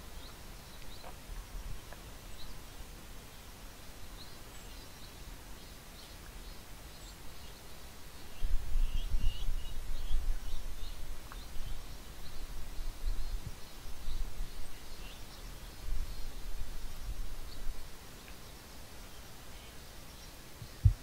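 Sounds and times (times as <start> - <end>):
small birds chirping: 0.0 - 21.0
low rumble on microphone: 8.3 - 18.0, 20.6 - 21.0.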